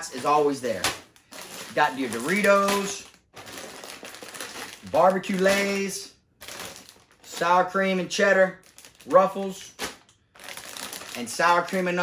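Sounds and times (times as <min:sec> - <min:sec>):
foil chip bag crinkling: 0:00.0 - 0:12.0.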